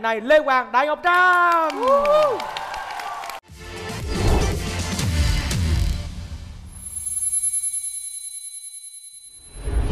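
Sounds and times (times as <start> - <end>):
shimmering ringing chime: 6.7 - 9.9.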